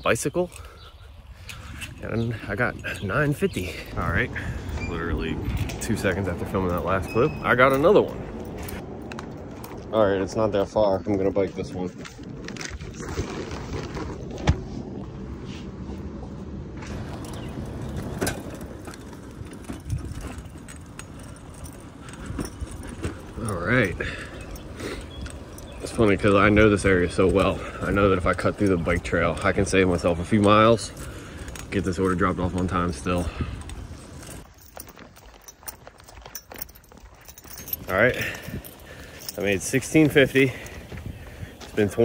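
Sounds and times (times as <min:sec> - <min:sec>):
steady low rumble: 0:01.2 - 0:34.8
bicycle clicks and rattles: 0:16.9 - 0:42.0.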